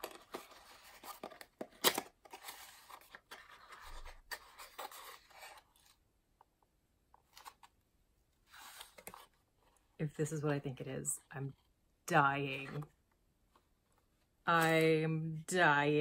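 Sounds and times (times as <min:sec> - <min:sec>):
box and packaging rustling: 0:00.0 - 0:06.0, 0:07.1 - 0:07.8, 0:08.4 - 0:09.8.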